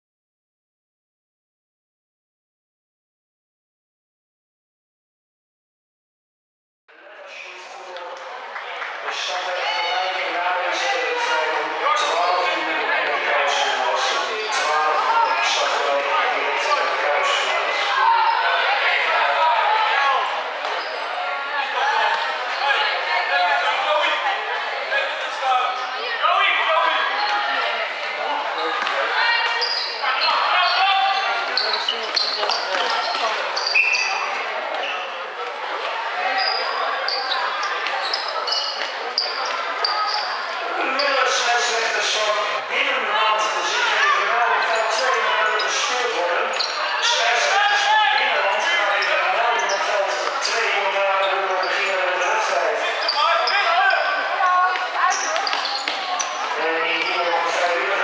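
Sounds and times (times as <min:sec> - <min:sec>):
shoes squeaking: 0:28.6 - 0:35.0, 0:36.3 - 0:41.4, 0:44.6 - 0:47.2, 0:48.9 - 0:50.5, 0:51.2 - 0:57.8.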